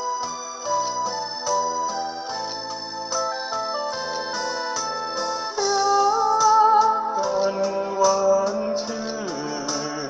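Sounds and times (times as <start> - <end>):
karaoke backing track: 0.0 - 10.0
person singing into microphone: 5.6 - 10.0.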